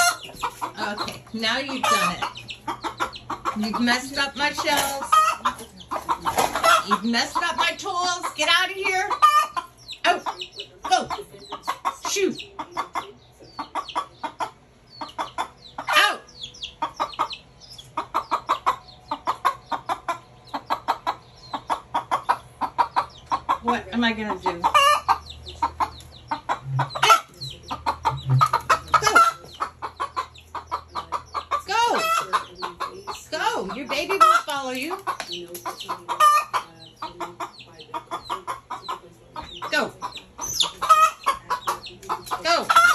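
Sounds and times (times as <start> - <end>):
chick peeping: 0.0 - 42.9
hen clucking: 0.0 - 42.9
hen squawking: 0.0 - 42.9.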